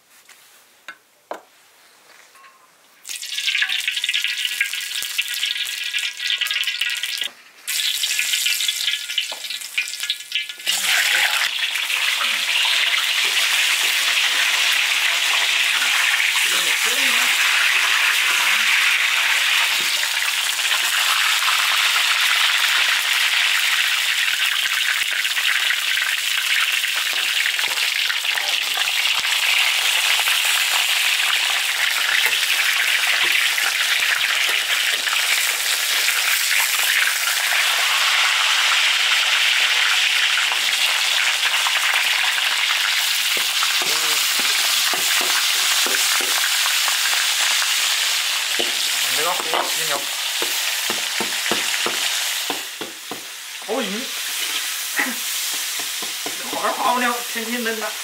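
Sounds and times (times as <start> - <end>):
fish frying in hot oil: 3.0 - 58.0
spatula scraping a wok: 54.2 - 56.4.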